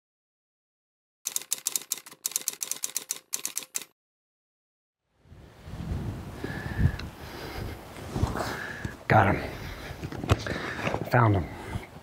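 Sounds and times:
camera shutter clicking: 1.3s - 3.9s.

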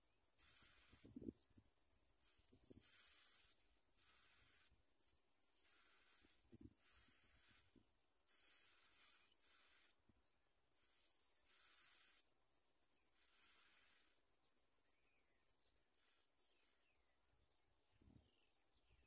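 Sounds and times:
nestlings begging calls: 0.4s - 1.2s, 2.7s - 4.7s, 5.6s - 7.7s, 8.3s - 10.0s, 11.0s - 12.2s, 13.2s - 14.2s.

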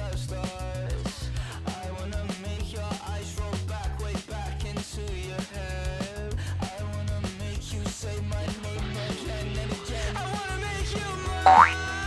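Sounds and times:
pop music with steady beat: 0.0s - 12.0s
rising boing sound effect: 11.5s - 11.8s.

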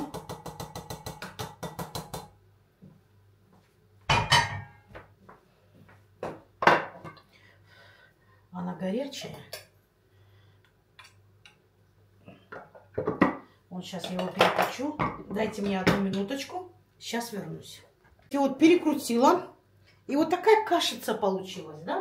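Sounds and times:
kitchenware knocking on counter: 4.1s - 4.8s.

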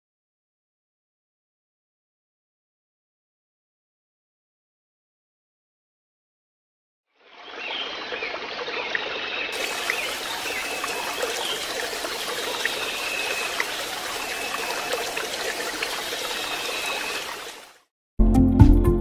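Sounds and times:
water running and trickling: 7.3s - 17.9s.

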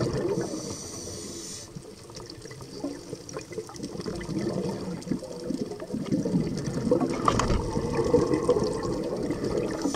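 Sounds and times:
water rushing underwater: 0.0s - 9.9s.

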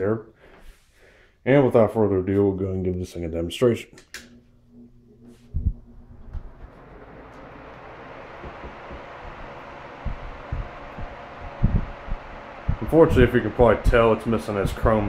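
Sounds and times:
desk fan whooshing: 5.2s - 15.0s
low thumps: 8.3s - 15.0s.

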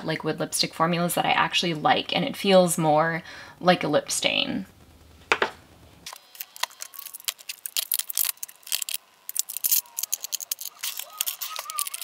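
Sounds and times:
faint plastic squeaks: 6.4s - 12.0s
plastic tubes clicking on trays: 6.4s - 12.0s.

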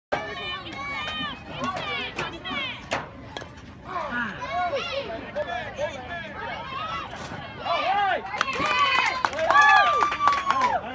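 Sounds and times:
faint claps: 8.4s - 10.9s.

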